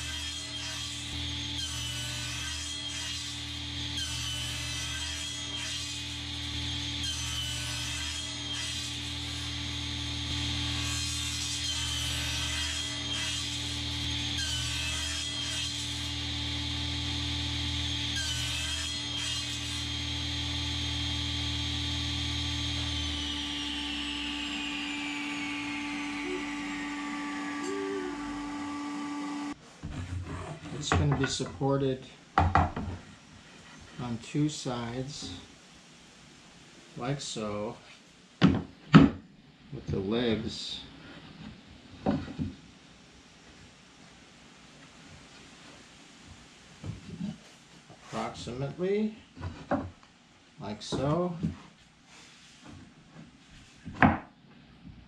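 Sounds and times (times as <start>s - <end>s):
table saw cutting wood: 0.0s - 31.3s
saw blade whine coasting down: 20.0s - 29.6s.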